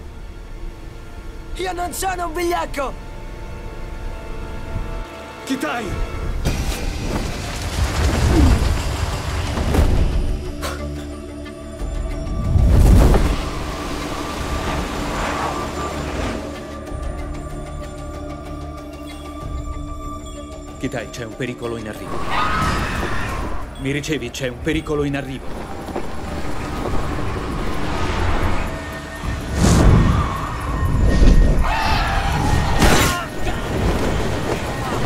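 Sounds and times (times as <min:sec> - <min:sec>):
sustained music score: 0:00.0 - 0:35.0
rushing wind: 0:25.4 - 0:35.0
loud whoosh: 0:27.0 - 0:31.6.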